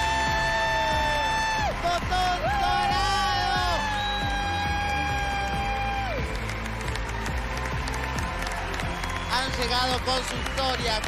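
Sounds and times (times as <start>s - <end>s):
low musical backing: 0.0s - 11.0s.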